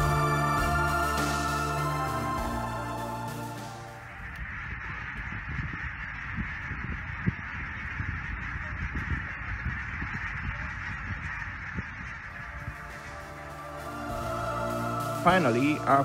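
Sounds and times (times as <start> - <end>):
geese honking overhead: 0.0 - 16.0
low rumble: 4.0 - 16.0.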